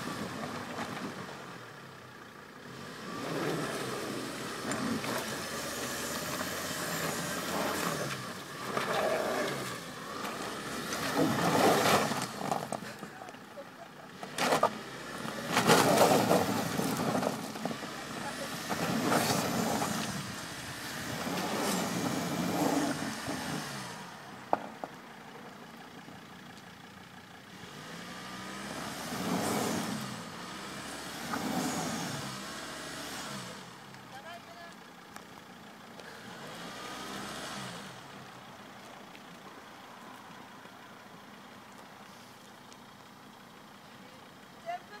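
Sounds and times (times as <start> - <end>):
diesel engine revving: 0.0 - 13.4, 14.1 - 24.5, 26.4 - 34.0, 35.9 - 40.4.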